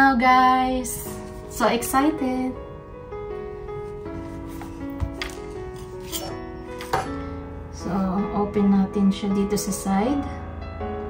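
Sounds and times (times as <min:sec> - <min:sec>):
background music with held notes: 0:00.0 - 0:11.0.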